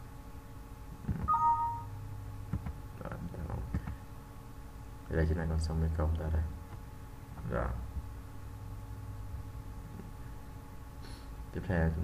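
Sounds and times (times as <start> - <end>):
two-tone system chime: 1.3 - 1.9.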